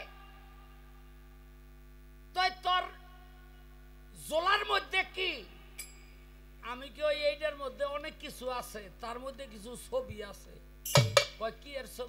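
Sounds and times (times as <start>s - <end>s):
man talking: 4.2s - 5.5s, 6.6s - 10.6s, 11.4s - 12.0s.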